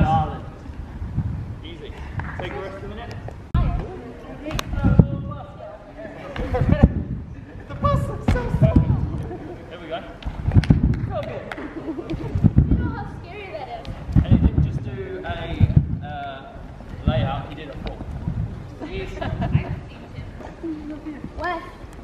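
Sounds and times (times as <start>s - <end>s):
voices talking: 1.6s - 22.0s.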